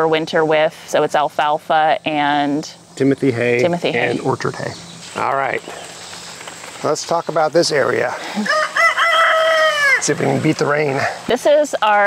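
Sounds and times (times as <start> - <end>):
rooster crowing: 8.4 - 10.3.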